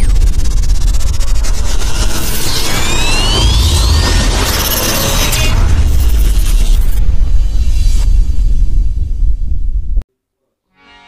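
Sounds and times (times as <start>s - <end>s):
deep steady rumble: 0.0s - 10.0s.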